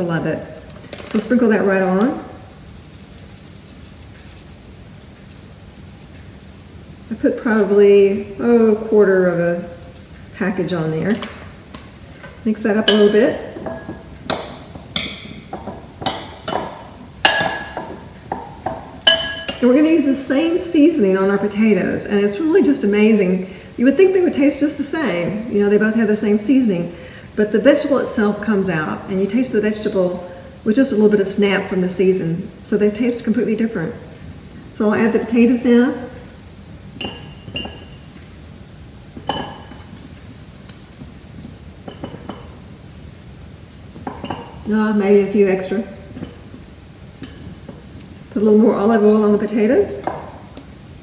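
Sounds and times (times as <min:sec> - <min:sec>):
utensil clinking on glass bowl: 0:12.8 - 0:19.8, 0:37.0 - 0:38.2, 0:39.2 - 0:40.0, 0:41.8 - 0:42.6, 0:44.0 - 0:44.7, 0:46.1 - 0:46.6, 0:47.2 - 0:47.8
potatoes clinking into glass bowl: 0:41.8 - 0:42.6.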